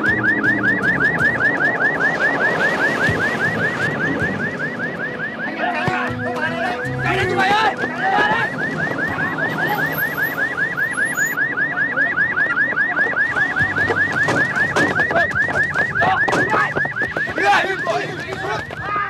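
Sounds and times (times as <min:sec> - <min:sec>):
police siren fast yelp: 0:00.0 - 0:18.7.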